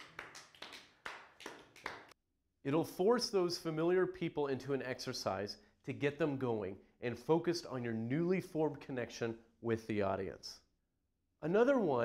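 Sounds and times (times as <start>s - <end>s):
people clapping: 0.0s - 2.2s.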